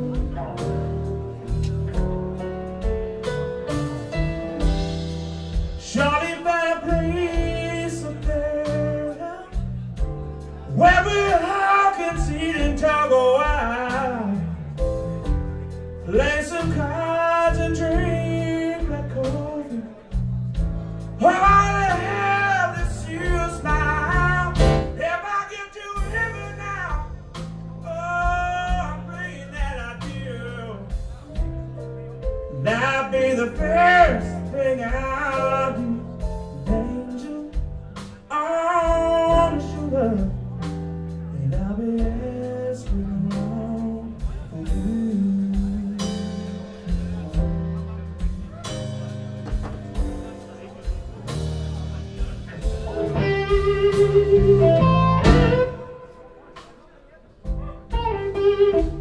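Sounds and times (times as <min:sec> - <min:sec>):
bass guitar: 0:00.0 - 0:56.7, 0:57.4 - 0:59.0
blues-rock band playing: 0:00.0 - 0:59.0
drums: 0:00.0 - 0:59.0
man singing: 0:05.5 - 0:15.2, 0:16.0 - 0:20.3, 0:21.2 - 0:31.4, 0:32.2 - 0:51.0
electric guitar: 0:52.2 - 0:56.8, 0:57.5 - 0:59.0.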